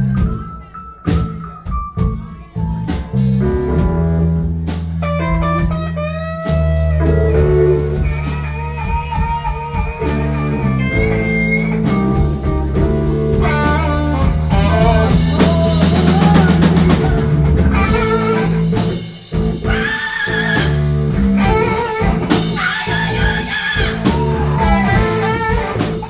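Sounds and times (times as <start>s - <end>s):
drum kit: 0.0s - 26.0s
live blues-rock band: 0.0s - 26.0s
electric guitar: 3.7s - 26.0s.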